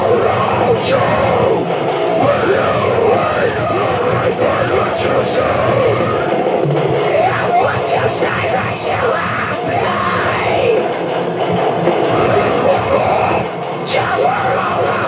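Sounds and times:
man screaming vocals: 0.0s - 6.4s, 7.1s - 11.0s, 12.0s - 15.0s
loud dense metal song: 0.0s - 15.0s.

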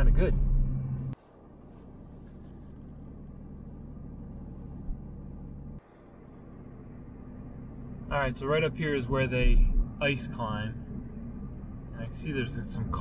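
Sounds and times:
car engine and road hum: 0.0s - 13.0s.

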